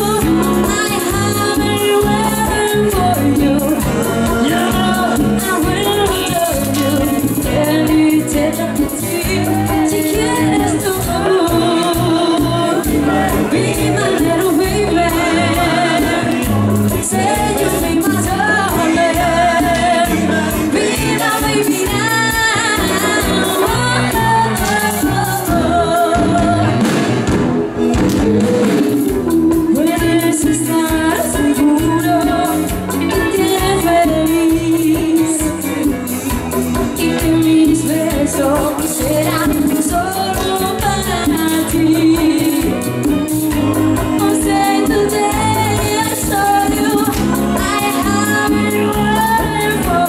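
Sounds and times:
person singing: 0.0 - 27.1, 27.8 - 50.0
drums: 0.0 - 50.0
electric bass: 0.0 - 50.0
high percussion beat: 0.0 - 50.0
live dance band playing: 0.0 - 50.0.

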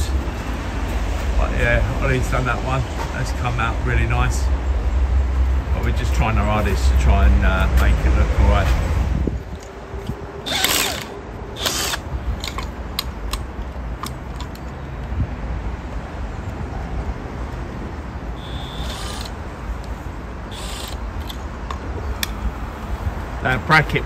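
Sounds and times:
steady low rumble: 0.0 - 24.0
rasping bursts: 10.4 - 13.4, 18.4 - 21.6
floodlight clicking and rattling: 10.6 - 14.8, 20.6 - 22.4.

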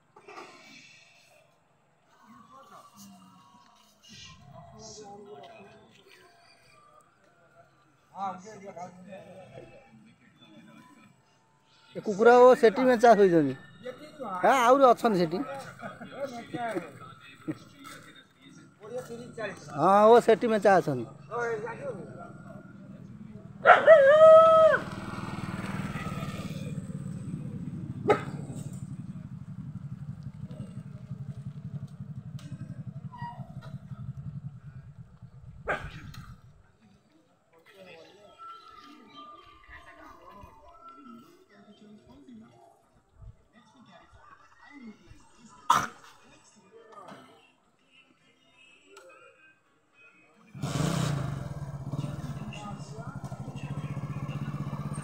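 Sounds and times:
motorcycle engine idling: 13.6 - 36.6, 50.6 - 55.0.

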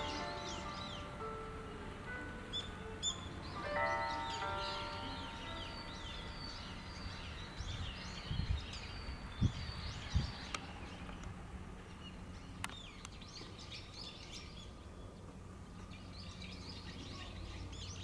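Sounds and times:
soft musical tones: 0.0 - 9.3
small birds chirping: 0.0 - 18.0.

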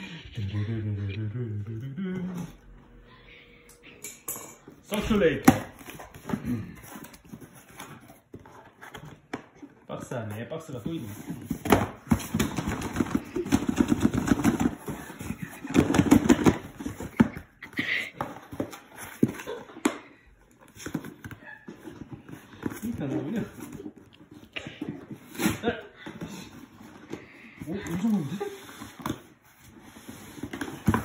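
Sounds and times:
person murmuring: 0.0 - 2.7.

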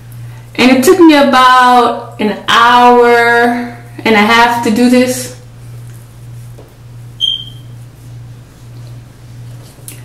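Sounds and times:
steady low hum: 0.0 - 10.0
short high-pitched ping: 7.2 - 7.6.

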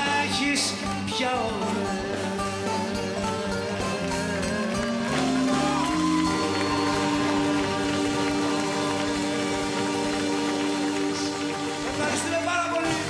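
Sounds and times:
live band sustained chord: 1.6 - 13.0
audience clapping: 2.9 - 13.0.

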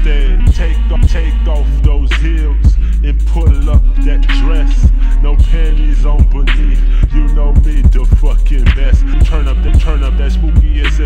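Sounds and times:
slowed deep rap vocals: 0.0 - 11.0
slowed hip hop beat: 0.0 - 11.0.

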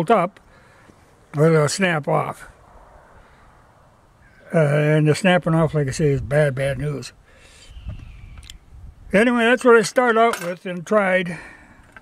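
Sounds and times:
low outdoor rumble: 0.3 - 7.4.

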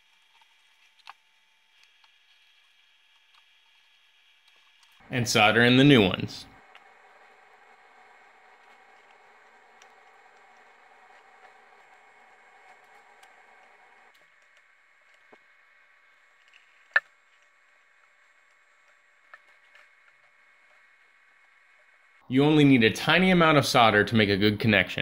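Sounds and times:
faint steady hiss: 0.0 - 25.0.

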